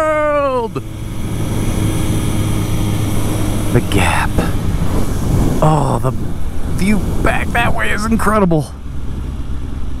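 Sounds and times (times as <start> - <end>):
motorcycle engine running: 0.0 - 7.6
wind noise on microphone: 4.4 - 7.2.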